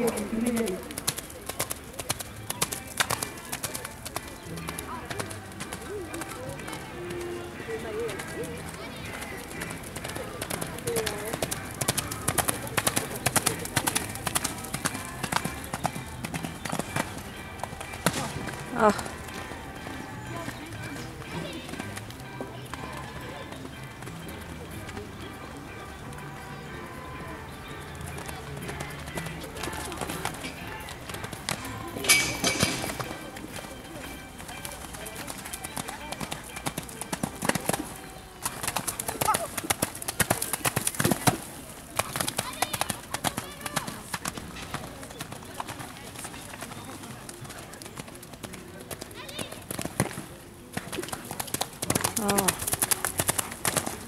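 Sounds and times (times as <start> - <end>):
horse hooves on wet sand: 0.0 - 25.1, 27.8 - 54.0
background music: 0.0 - 54.0.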